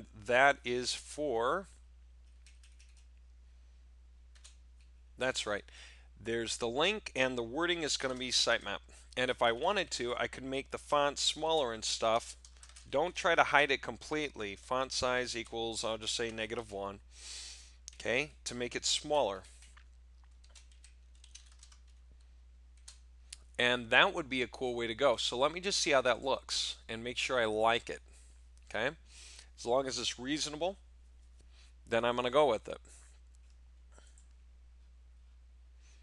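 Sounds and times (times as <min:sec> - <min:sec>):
low steady hum: 0:00.0 - 0:36.0
keyboard typing: 0:02.2 - 0:03.2, 0:04.3 - 0:04.9, 0:12.4 - 0:12.9, 0:19.4 - 0:23.0
keyboard keystrokes: 0:02.3 - 0:03.0.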